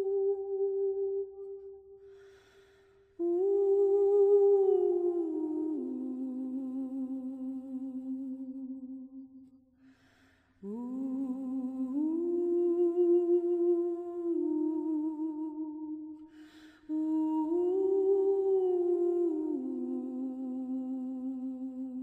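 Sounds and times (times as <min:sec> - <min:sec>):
person humming: 0:00.0 - 0:01.9, 0:03.2 - 0:09.2, 0:16.9 - 0:22.0.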